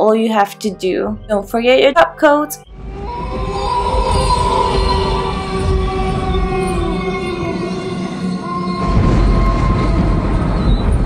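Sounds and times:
ambient music with long held tones: 0.8 - 11.0.

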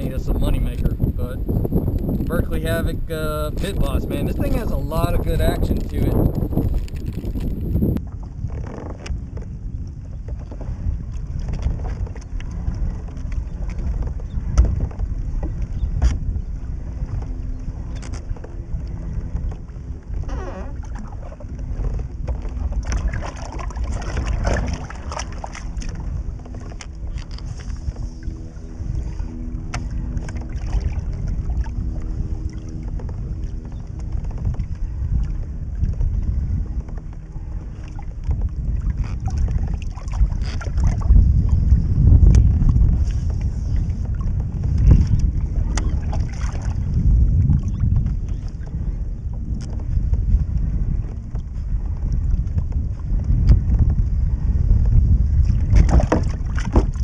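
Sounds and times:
low rumble: 0.0 - 57.0
wind buffeting microphone: 0.0 - 57.0
knocks against kayak: 14.0 - 16.2, 55.7 - 57.0
small water splashes: 20.6 - 27.4, 29.6 - 31.8, 38.8 - 41.1, 44.1 - 46.9, 55.4 - 57.0.

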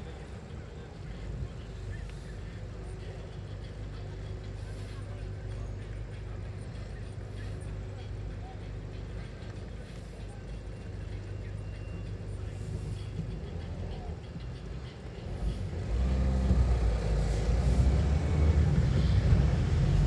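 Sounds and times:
car engine heard from cabin: 9.8 - 20.0.

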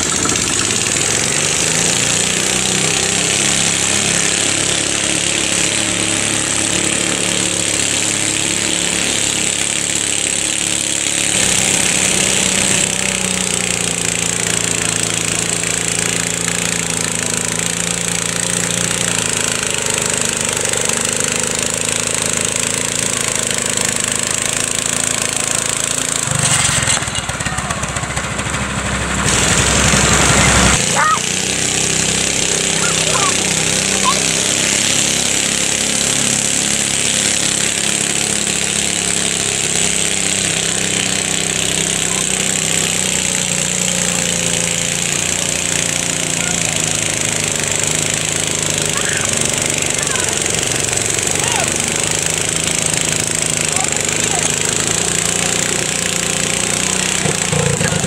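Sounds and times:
small tractor engine under load: 0.0 - 58.0.

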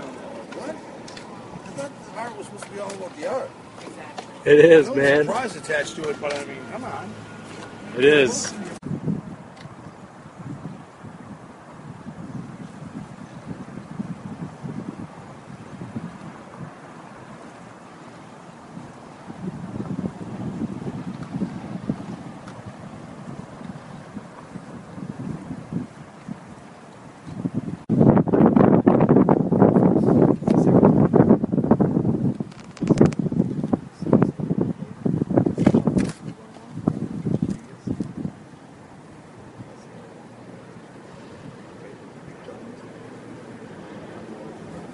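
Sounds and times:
wind buffeting microphone: 0.0 - 44.9.

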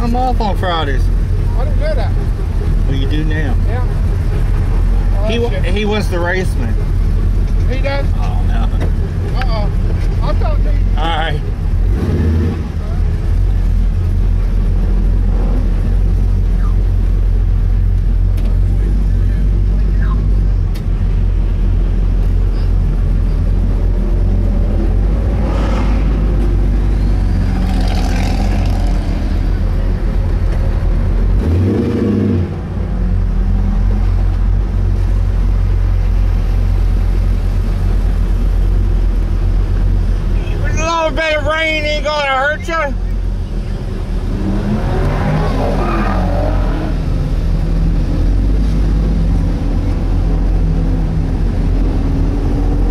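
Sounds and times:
car engine rumbling: 0.0 - 52.9.

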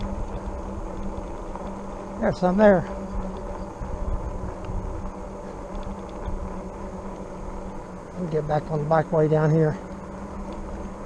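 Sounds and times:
wind buffeting microphone: 0.0 - 9.2
electric motor hum: 0.0 - 11.0
tyre rumble on asphalt: 0.0 - 11.0.

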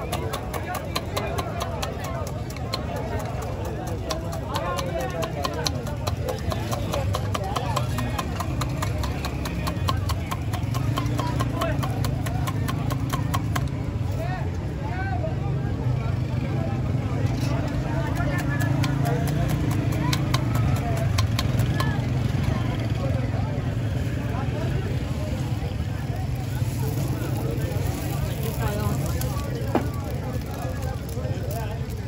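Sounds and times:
spatula clicking on metal griddle: 0.0 - 13.7, 18.1 - 21.9
crowd chatter: 0.0 - 32.0.

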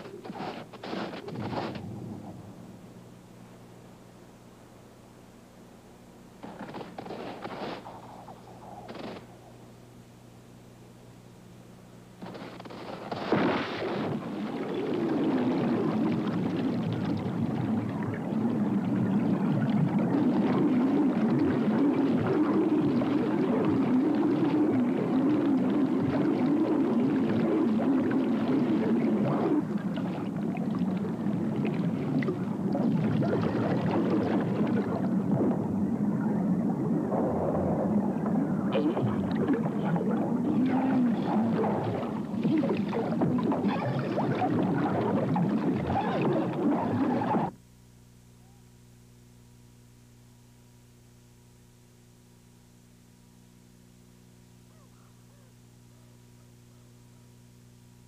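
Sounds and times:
underwater rumble of churning water: 0.0 - 3.0, 12.3 - 47.5
bubbles underwater: 13.4 - 47.5.

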